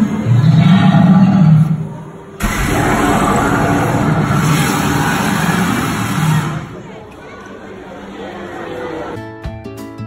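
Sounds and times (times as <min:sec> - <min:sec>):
loud rushing blast: 0:02.4 - 0:06.9.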